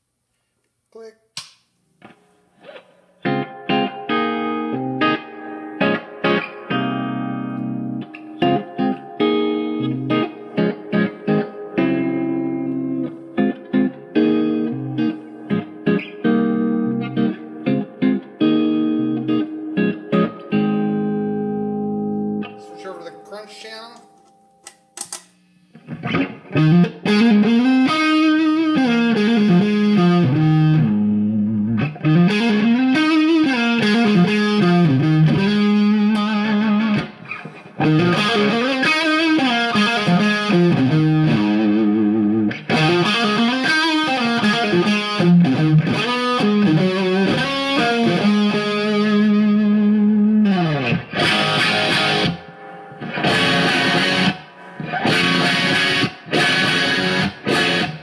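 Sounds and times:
guitar chopped chords: 1.4s - 58.0s
distorted electric guitar: 2.0s - 58.0s.

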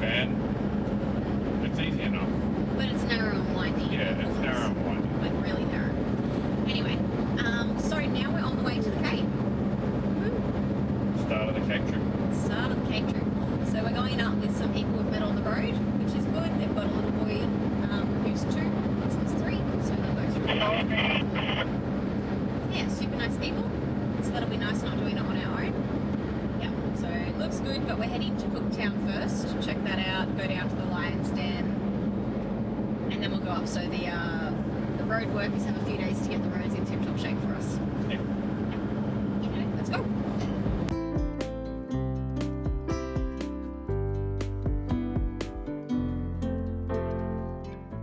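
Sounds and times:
car engine and road drone: 0.0s - 48.0s.

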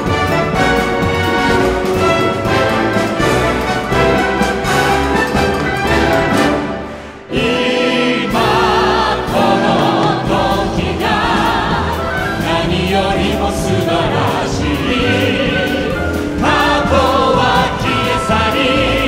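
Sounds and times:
full orchestra: 0.0s - 19.0s
singers singing with vibrato: 5.9s - 19.0s.

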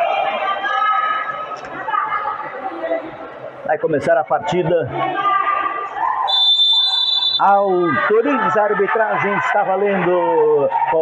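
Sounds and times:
referee's whistle blast: 6.3s - 7.7s.

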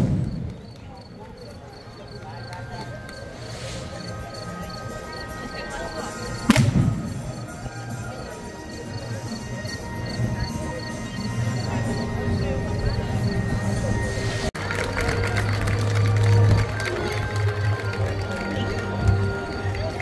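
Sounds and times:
music playing: 0.0s - 20.0s.

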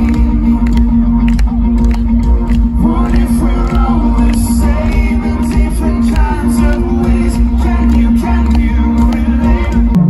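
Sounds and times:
crowd noise: 0.0s - 10.0s
live band music: 0.0s - 10.0s
person singing: 2.6s - 10.0s.

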